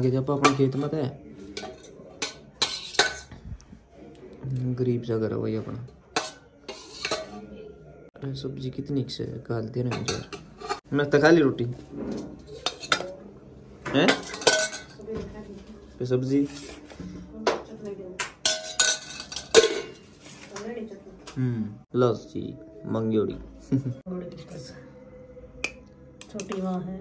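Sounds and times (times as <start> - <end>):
spoon clinking against steel pot: 0.4 - 3.3, 6.1 - 7.4, 9.9 - 10.8, 12.5 - 13.2, 14.1 - 15.0, 17.6 - 20.1.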